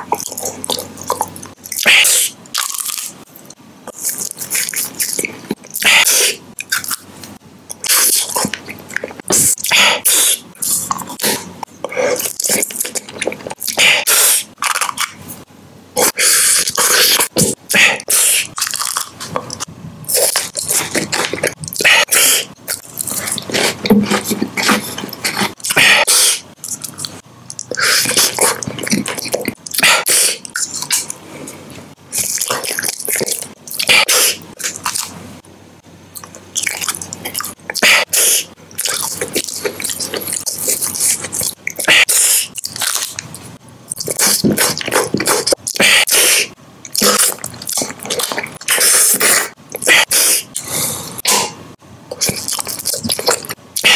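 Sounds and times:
close chewing and mouth noises: 0:00.0 - 0:35.2, 0:36.1 - 0:53.9.

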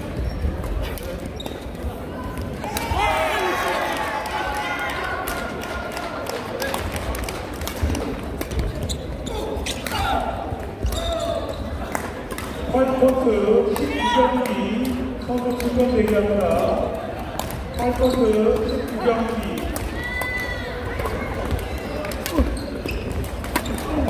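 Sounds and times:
shoes on wooden court floor: 0:07.6 - 0:11.8, 0:12.4 - 0:24.0.

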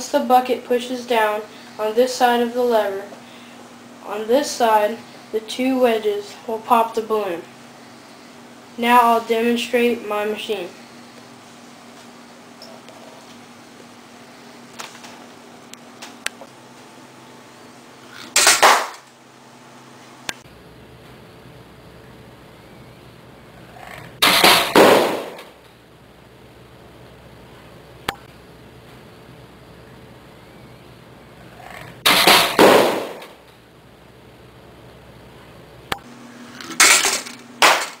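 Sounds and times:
noisy rattle: 0:23.7 - 0:25.6, 0:31.5 - 0:33.4, 0:36.4 - 0:38.0
balloon bursting with loud pop: 0:24.2 - 0:25.5, 0:32.0 - 0:33.3.

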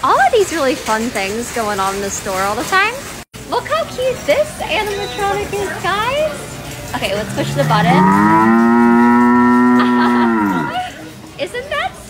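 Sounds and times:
recorded cow moo from speaker: 0:07.0 - 0:10.9.

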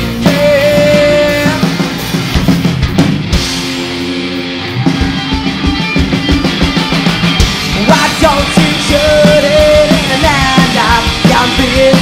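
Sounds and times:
drum kit: 0:00.0 - 0:12.0
electric guitars playing chords: 0:00.0 - 0:12.0.

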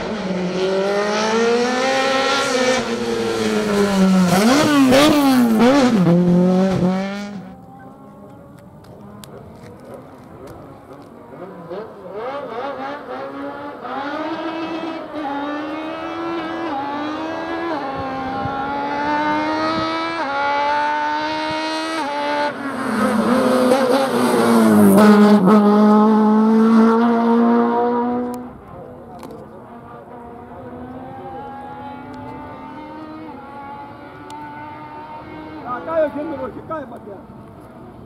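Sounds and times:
race car engine accelerating: 0:00.0 - 0:38.0
car passing by: 0:11.4 - 0:28.5.

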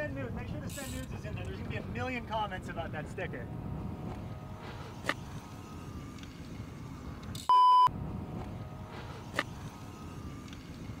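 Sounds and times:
wind rumble on microphone: 0:00.0 - 0:07.2, 0:07.9 - 0:11.0
censor bleep: 0:07.5 - 0:07.9.

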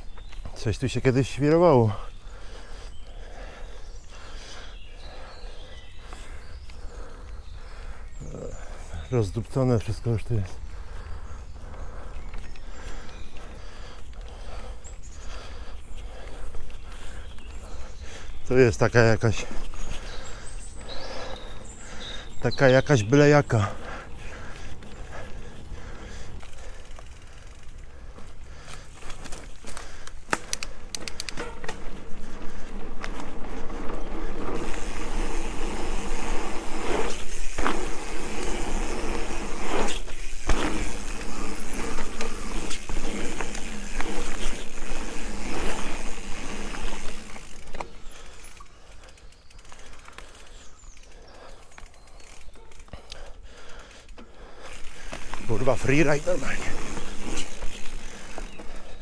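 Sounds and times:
bike tyres rolling on dirt: 0:00.0 - 0:59.0
bike rattling and knocking: 0:23.6 - 0:59.0.

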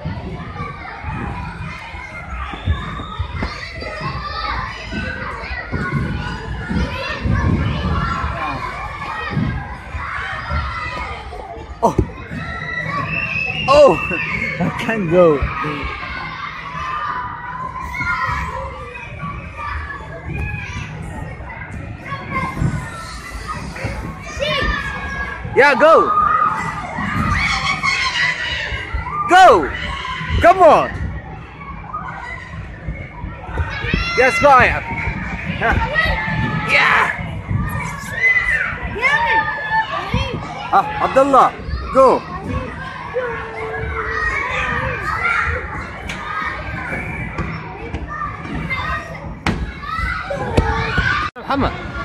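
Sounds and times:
children shouting: 0:00.0 - 0:52.0.

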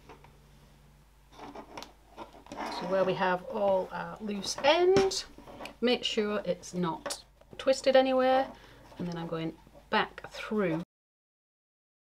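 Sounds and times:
webbing strap rubbing: 0:01.3 - 0:05.8.

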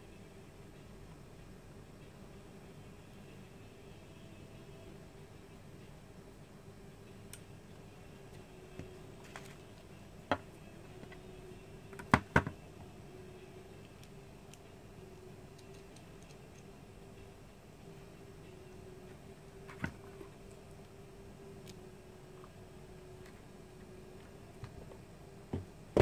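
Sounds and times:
steady hum: 0:00.0 - 0:26.0.

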